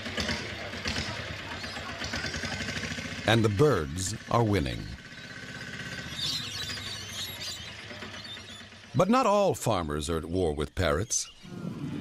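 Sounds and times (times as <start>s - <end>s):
lorikeets screeching and chattering: 1.2s - 2.6s, 4.2s - 11.5s.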